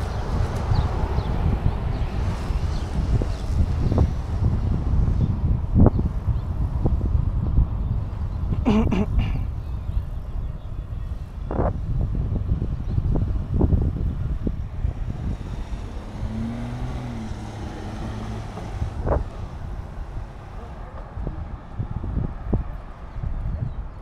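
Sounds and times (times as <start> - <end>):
road rumble: 0.0 - 24.0
wind on microphone: 0.0 - 24.0.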